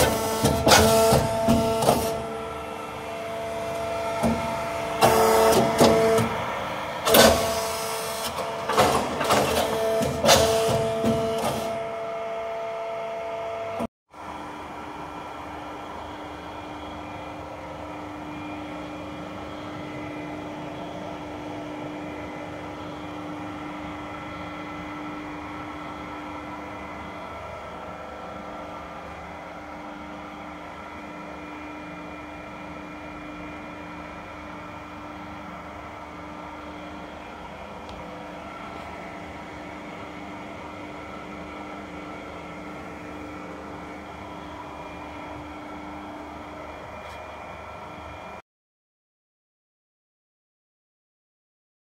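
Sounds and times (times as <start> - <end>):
motor and hydraulic pump hum: 0.0 - 48.4.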